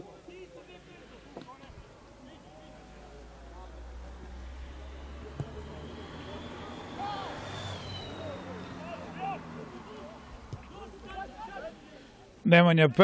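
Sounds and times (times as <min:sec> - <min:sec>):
distant voices calling out: 0:00.2 - 0:12.4
ball being kicked: 0:05.3 - 0:05.7, 0:10.4 - 0:10.8.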